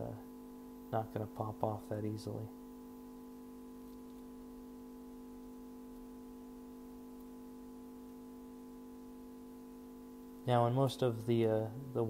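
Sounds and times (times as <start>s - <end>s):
vacuum pump humming: 0.0s - 12.0s.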